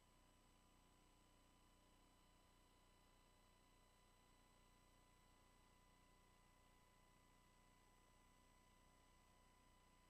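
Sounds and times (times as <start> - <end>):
faint steady hum and hiss: 0.0 - 10.0.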